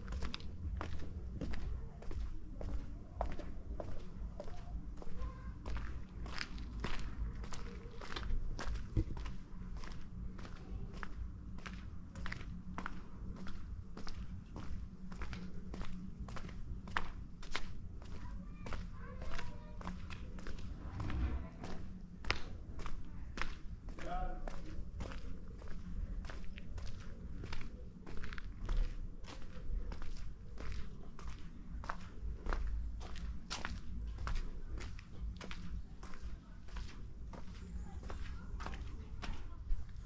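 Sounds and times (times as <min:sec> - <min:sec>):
footsteps on cobblestones: 0:00.0 - 0:40.0.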